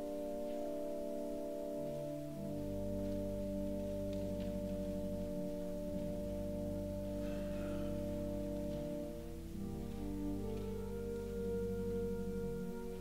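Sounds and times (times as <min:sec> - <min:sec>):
slow sustained church chords: 0:00.0 - 0:13.0.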